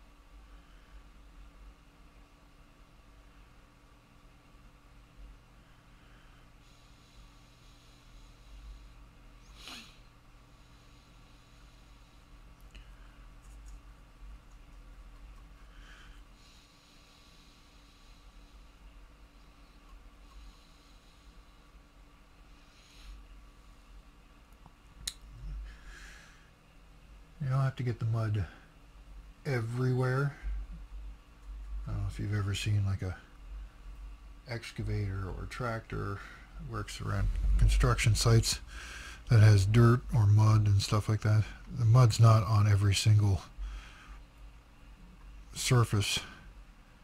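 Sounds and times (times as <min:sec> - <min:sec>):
faint room hum: 0:00.0 - 0:47.0
soft breath: 0:05.5 - 0:13.7, 0:15.6 - 0:24.1, 0:25.3 - 0:26.6, 0:36.0 - 0:39.4, 0:43.5 - 0:44.4.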